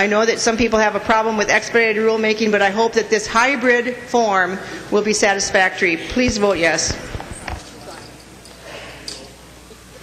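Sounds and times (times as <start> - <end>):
hum of a large chamber: 0.0 - 10.0.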